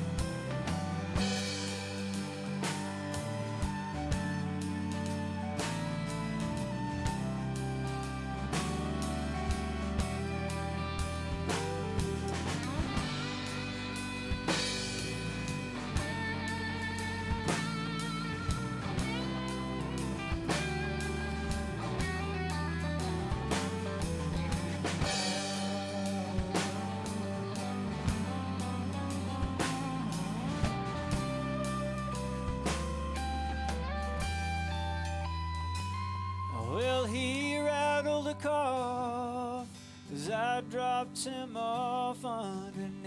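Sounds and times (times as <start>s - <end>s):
steady drum beat: 0.0s - 36.2s
electric guitar solo: 0.0s - 39.0s
country band playing: 0.0s - 43.0s.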